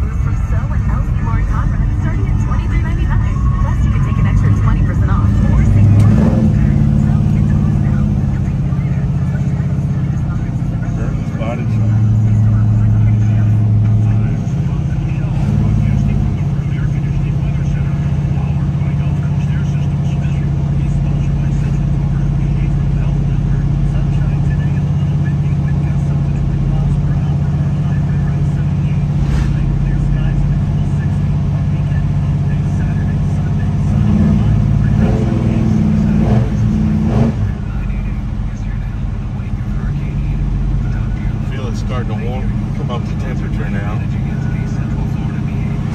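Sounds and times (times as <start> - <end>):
car engine drone from inside cabin: 0.0 - 45.9.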